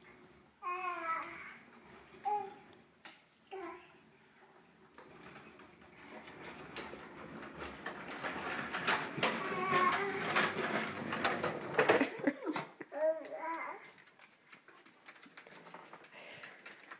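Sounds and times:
plastic wheels rolling on wood floor: 0.0s - 16.9s.

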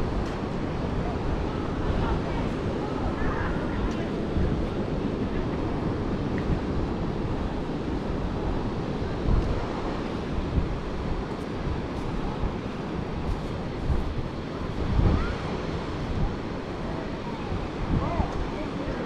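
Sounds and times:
ocean surf washing: 0.0s - 19.0s
wind buffeting microphone: 0.0s - 19.0s.

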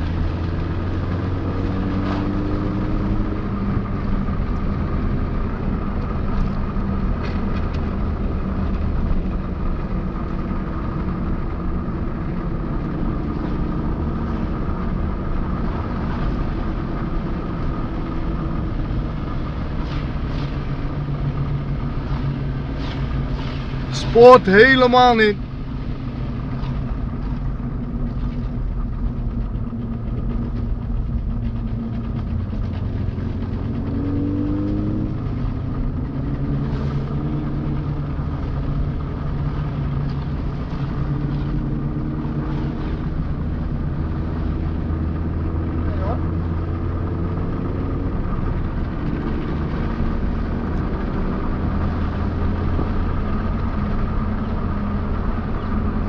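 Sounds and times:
car engine and tyre noise: 0.0s - 56.0s.

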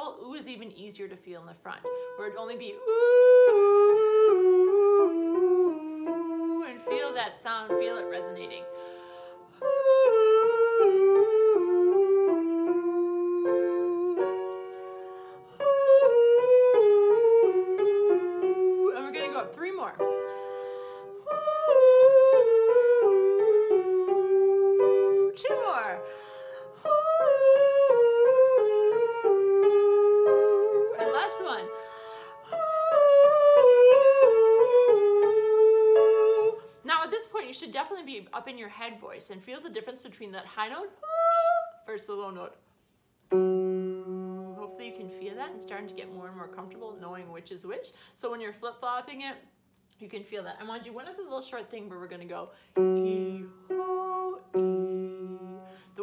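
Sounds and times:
woman singing a descending scale: 1.7s - 8.7s, 9.6s - 14.8s, 15.6s - 37.5s, 40.6s - 42.4s, 43.6s - 47.0s, 52.8s - 55.7s
sustained piano notes: 1.8s - 36.7s.

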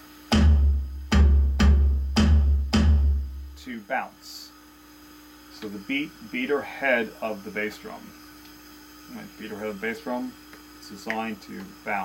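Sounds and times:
deep drum boom: 0.3s - 3.6s
stick hitting electronic drum pad: 0.3s - 3.6s.

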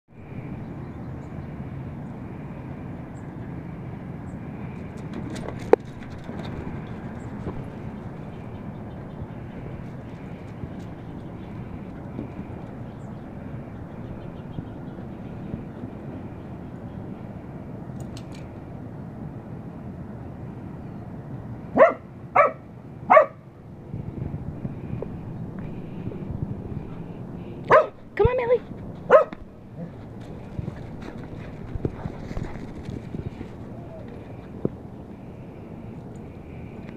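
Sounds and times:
dog barking: 21.8s - 23.4s, 27.7s - 28.0s, 29.1s - 29.4s.

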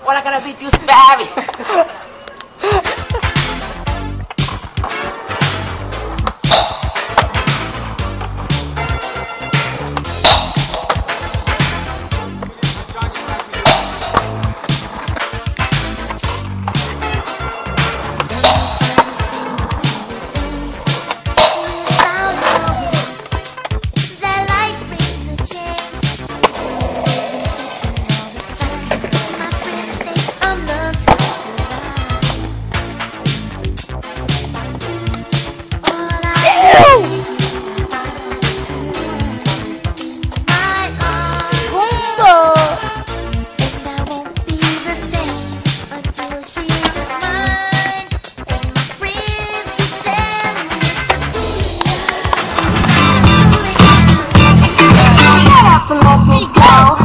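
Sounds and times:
music with a beat: 2.8s - 57.0s
skateboard scraping along curb: 11.0s - 23.7s, 26.3s - 32.4s, 48.7s - 55.4s
skateboard snapping: 13.3s - 15.4s, 18.2s - 23.8s, 25.7s - 31.7s, 50.3s - 54.1s
skateboard rolling on asphalt: 26.3s - 32.6s, 48.6s - 55.4s.

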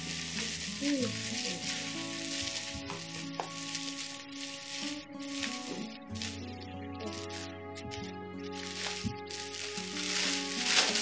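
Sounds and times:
steady hiss: 0.0s - 7.4s
soft background music: 0.0s - 11.0s.

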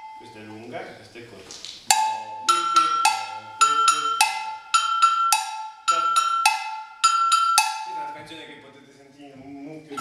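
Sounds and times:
cowbell struck in rhythm: 0.0s - 0.4s, 1.9s - 8.6s.

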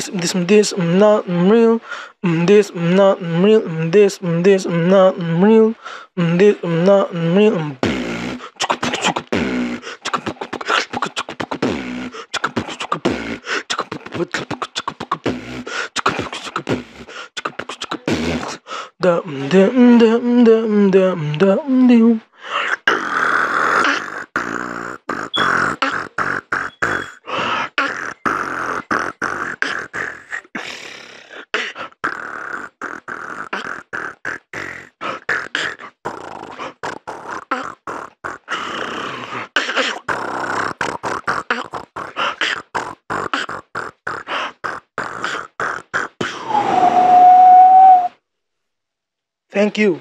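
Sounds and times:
long held vocal tone: 0.0s - 13.0s, 17.4s - 30.0s, 46.2s - 48.2s
person beatboxing: 0.0s - 47.0s.

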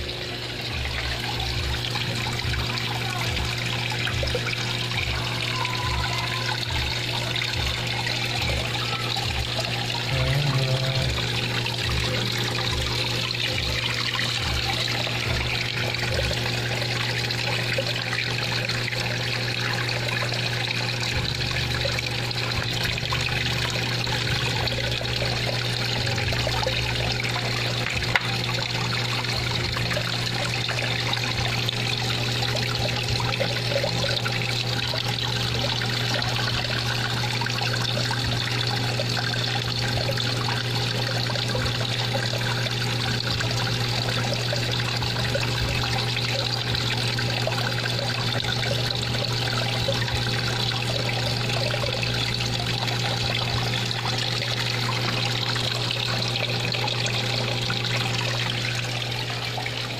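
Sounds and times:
aquarium air bubbling: 0.0s - 59.9s
low steady hum: 0.0s - 59.9s.

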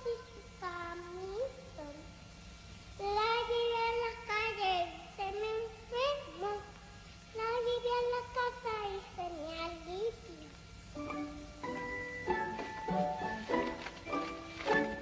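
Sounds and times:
high voice singing wordless melody: 0.0s - 2.1s, 3.0s - 6.8s, 7.4s - 11.8s.

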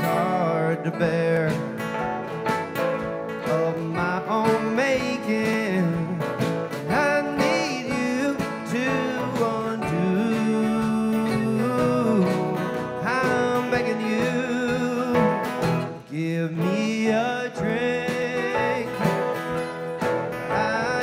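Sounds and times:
person singing: 0.0s - 2.2s, 3.0s - 21.0s
guitars and mandolin playing: 0.0s - 21.0s.

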